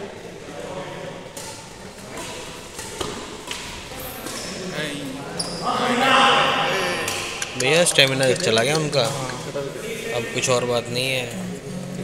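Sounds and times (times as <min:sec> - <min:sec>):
racket hitting shuttlecock: 0:01.3 - 0:04.5.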